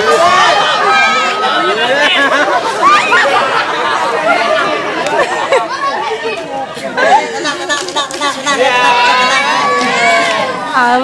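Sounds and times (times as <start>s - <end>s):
crowd of adults and children talking: 0.0s - 11.0s.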